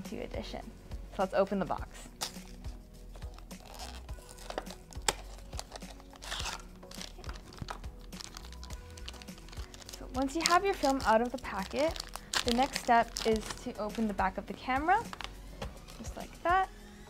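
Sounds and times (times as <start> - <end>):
quiet background music: 0.0 - 17.0
foil crinkling: 3.2 - 14.1.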